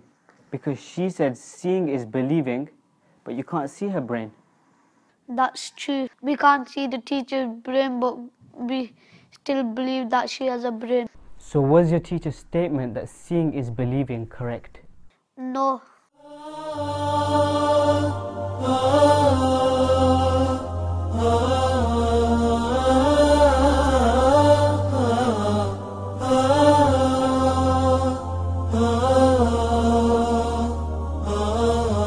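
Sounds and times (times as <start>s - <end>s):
solo vocal chant: 16.2s - 32.0s
steady low drone: 16.4s - 32.0s.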